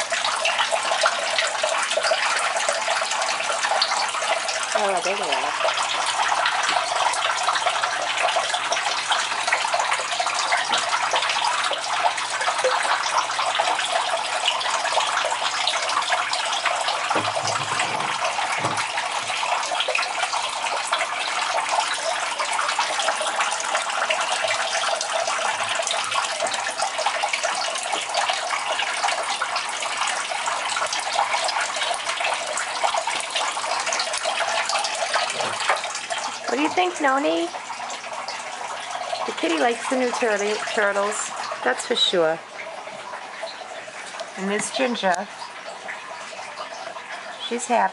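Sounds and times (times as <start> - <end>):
water splashing from filter: 0.0 - 47.9.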